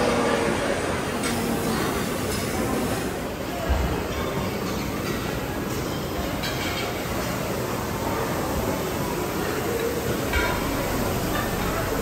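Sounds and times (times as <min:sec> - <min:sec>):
restaurant din: 0:00.0 - 0:12.0.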